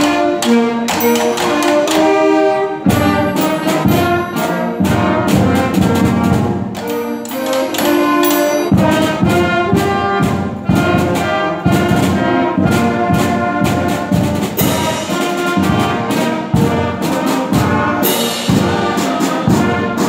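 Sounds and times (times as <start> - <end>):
school concert band playing: 0.0 - 20.0
snare drum strokes: 0.0 - 20.0.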